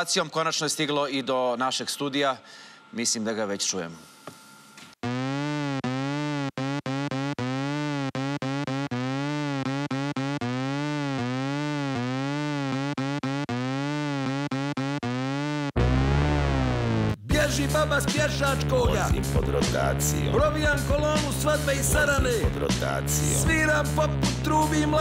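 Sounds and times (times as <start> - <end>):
distorted electronic siren wailing: 5.0 - 17.2.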